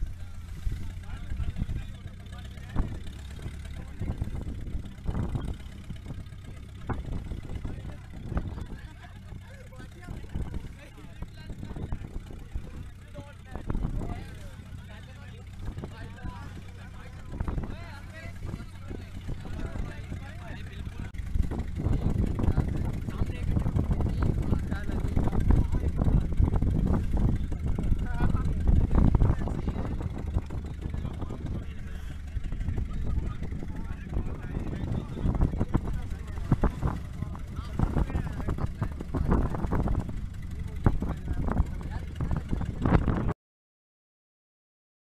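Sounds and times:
indistinct voices: 0.0s - 43.3s
loud rumbling noise: 0.0s - 43.4s.

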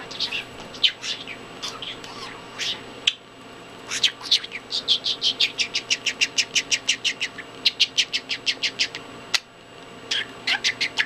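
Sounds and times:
budgerigar chirping: 0.0s - 3.2s, 3.9s - 9.0s, 10.1s - 11.0s.

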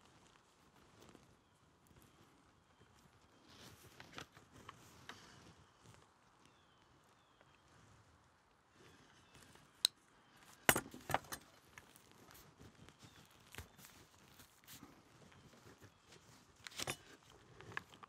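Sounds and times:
leather rustling: 10.4s - 18.0s.

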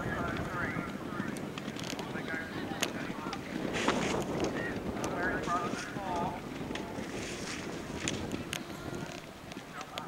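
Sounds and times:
indistinct voices outdoors: 0.0s - 10.0s
wind buffeting microphone: 0.0s - 10.0s.

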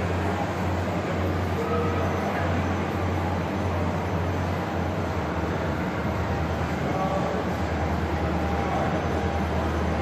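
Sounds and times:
low hall hum: 0.0s - 10.0s.

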